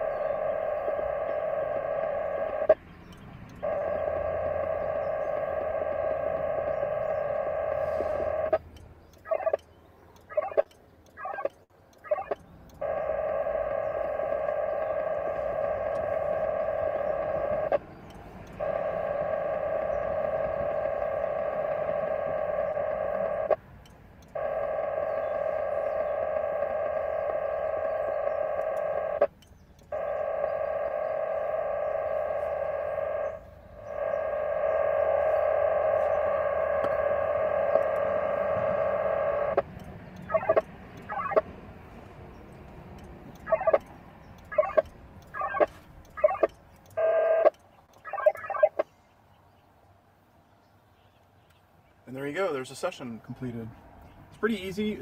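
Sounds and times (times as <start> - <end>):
buzzing warble of modem tones: 0.0 - 2.8, 3.6 - 8.6, 9.2 - 9.6, 10.3 - 23.6, 24.3 - 41.5, 43.3 - 48.8.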